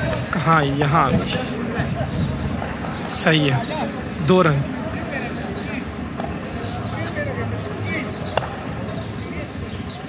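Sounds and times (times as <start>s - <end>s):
voices: 0.0s - 10.0s
ball bouncing on asphalt: 8.2s - 8.8s.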